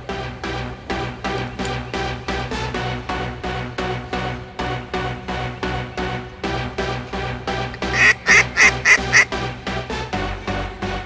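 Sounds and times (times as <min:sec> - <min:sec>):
electronic music with steady beat: 0:07.6 - 0:09.3
duck call quacks: 0:07.8 - 0:09.3.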